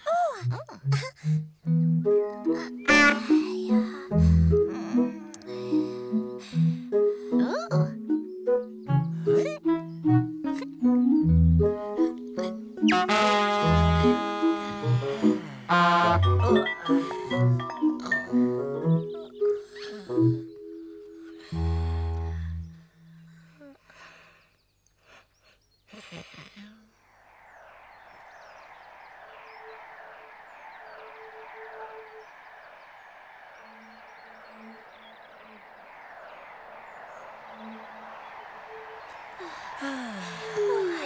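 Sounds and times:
birdsong chirping: 1.4s - 41.0s
playful pitched musical notes: 1.6s - 19.4s.

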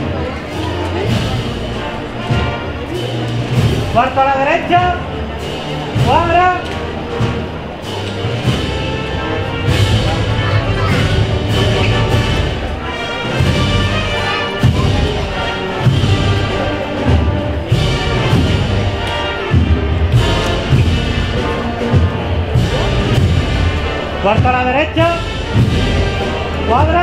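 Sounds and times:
brass and woodwind band march: 0.0s - 27.0s
bass drum beats: 13.4s - 27.0s.

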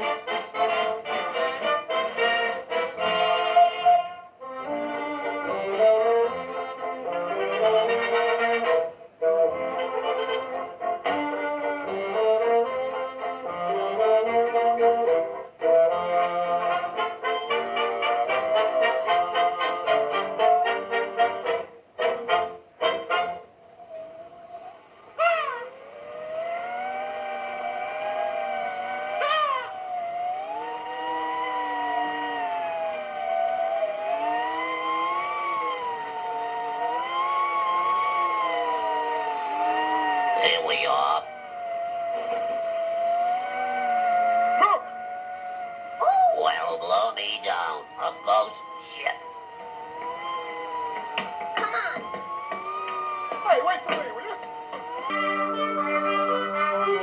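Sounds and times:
brass-led orchestral cartoon music: 0.0s - 23.6s, 53.4s - 57.0s
slowly wavering gliding tone: 23.8s - 51.5s
cartoon seagulls cawing: 25.2s - 25.9s, 29.1s - 29.9s.

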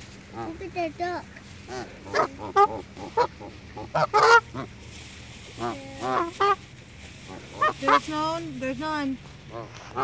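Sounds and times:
geese honking: 1.6s - 8.4s, 9.4s - 10.0s.

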